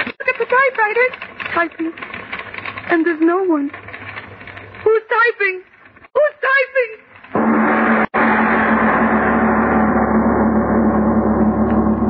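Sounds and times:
gong-like dramatic sting: 7.4s - 12.0s.

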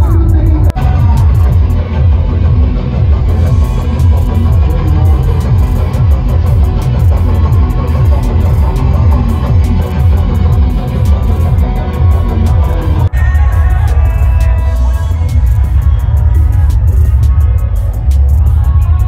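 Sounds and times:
loud music with heavy bass: 0.0s - 19.0s.

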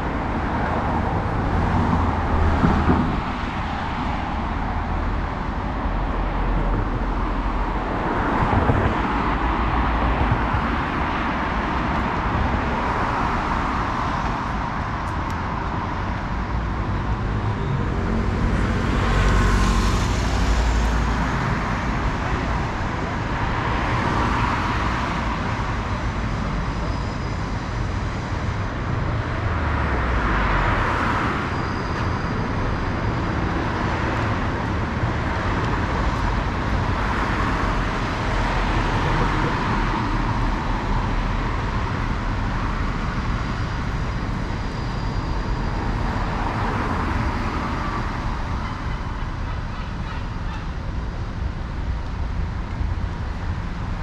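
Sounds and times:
cars driving past: 0.0s - 54.0s
heavy vehicle rumble: 0.0s - 54.0s.

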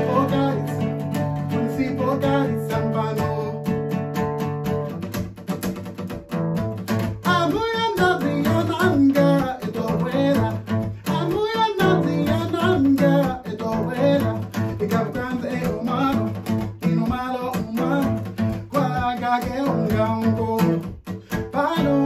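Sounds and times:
man singing: 0.0s - 4.0s, 6.8s - 22.0s
acoustic guitar strumming: 0.0s - 22.0s.

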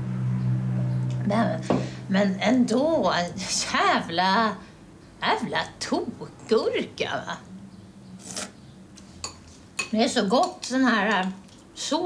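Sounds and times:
spoon scraping a bowl: 8.2s - 11.7s.

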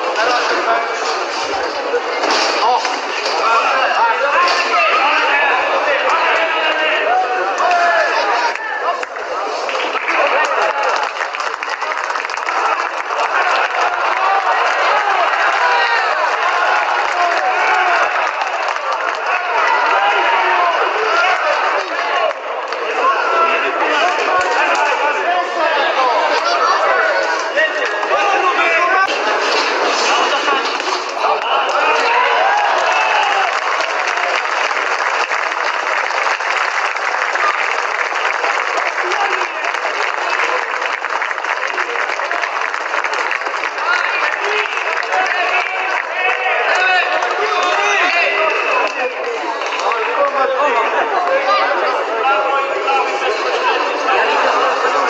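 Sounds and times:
crowd shouting: 0.0s - 55.0s.

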